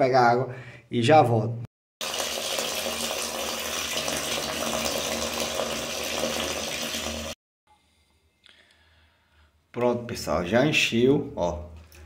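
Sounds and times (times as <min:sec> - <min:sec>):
water pouring into bucket: 0:02.0 - 0:07.4.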